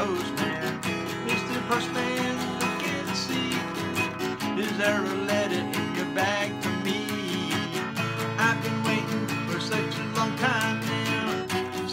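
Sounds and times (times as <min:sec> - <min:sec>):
acoustic guitar strumming chords: 0:00.0 - 0:11.9.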